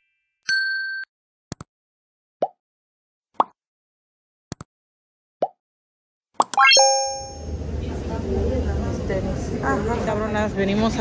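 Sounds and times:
short bright chime: 0:06.6 - 0:07.5.

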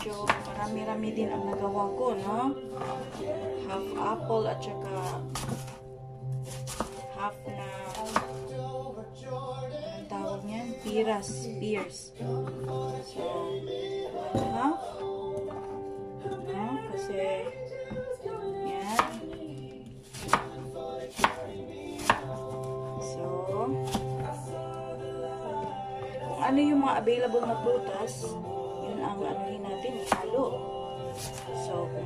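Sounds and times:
knife slicing apple: 0:00.0 - 0:00.7, 0:04.9 - 0:08.4, 0:18.7 - 0:19.4, 0:20.0 - 0:22.6, 0:23.8 - 0:24.3, 0:29.9 - 0:31.6
background music sustained notes: 0:00.0 - 0:32.0.

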